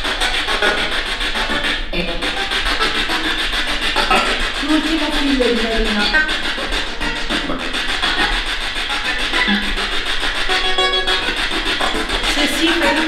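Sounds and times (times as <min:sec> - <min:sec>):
radio music snatches: 0:00.0 - 0:13.0
broadcast voices: 0:01.9 - 0:10.4, 0:11.3 - 0:13.0
choppy radio static: 0:12.2 - 0:13.0.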